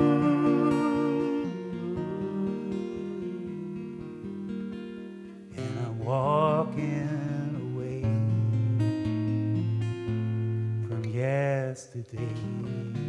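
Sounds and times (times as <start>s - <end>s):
man singing with vibrato: 0.0s - 4.4s, 5.5s - 8.4s, 10.8s - 13.0s
acoustic guitar: 0.0s - 13.0s.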